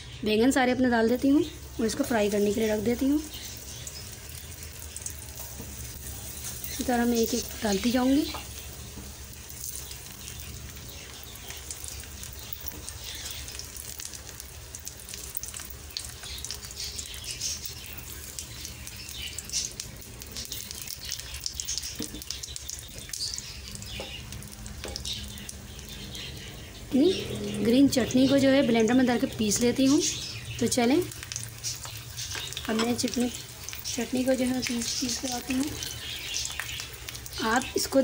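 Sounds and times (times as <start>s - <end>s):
frying in oil sizzling and popping: 0.0s - 38.0s.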